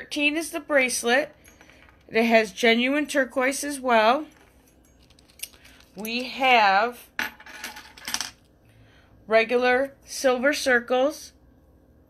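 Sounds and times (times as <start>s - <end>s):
chain bracelet jingling: 4.1s - 6.3s.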